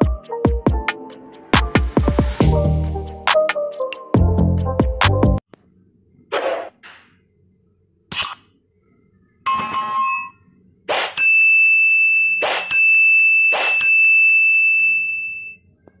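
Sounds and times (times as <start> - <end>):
high ringing tone: 9.5 - 10.6, 11.2 - 15.7
bell ding: 12.0 - 15.6.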